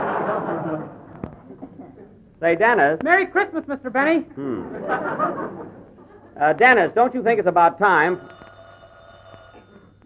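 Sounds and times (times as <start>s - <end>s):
old telephone bell ringing: 7.8s - 10.0s.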